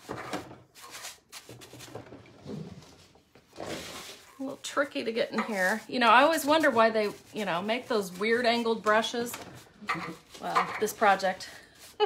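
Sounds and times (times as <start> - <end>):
paintbrush brushing on metal: 3.8 - 12.0.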